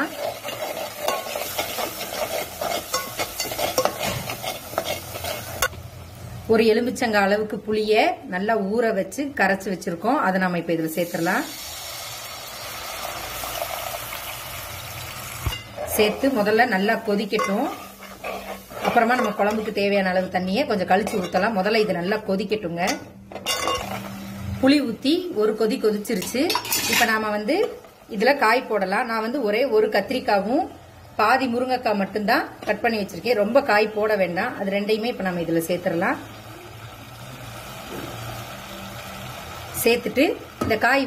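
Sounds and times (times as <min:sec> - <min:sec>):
metal spoon scraping a pot: 0:00.0 - 0:05.8, 0:15.5 - 0:22.2, 0:22.9 - 0:24.3, 0:26.1 - 0:27.3
food sizzling in oil: 0:00.0 - 0:07.5, 0:10.7 - 0:41.0.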